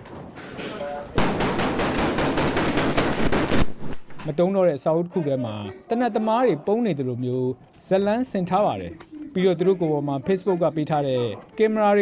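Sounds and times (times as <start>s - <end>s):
rapid automatic gunfire: 1.2s - 3.7s.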